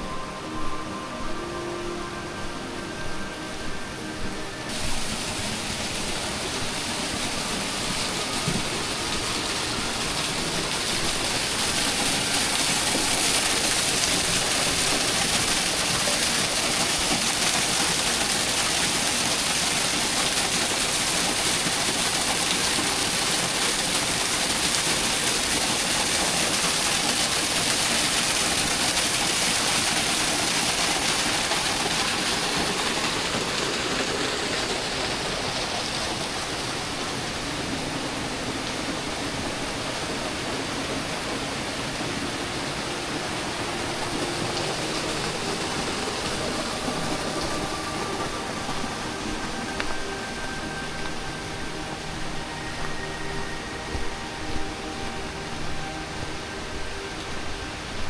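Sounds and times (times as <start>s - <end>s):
waterfall rushing: 0.0s - 58.0s.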